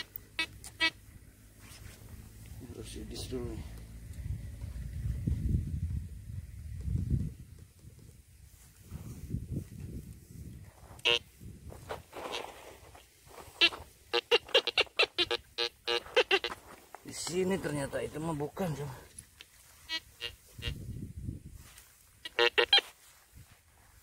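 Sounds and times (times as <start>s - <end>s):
metal detector beeps: 13.5s - 16.6s, 19.8s - 20.8s.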